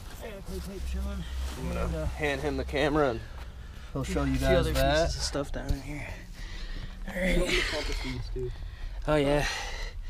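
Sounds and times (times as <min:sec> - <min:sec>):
low rumble: 0:00.0 - 0:09.5.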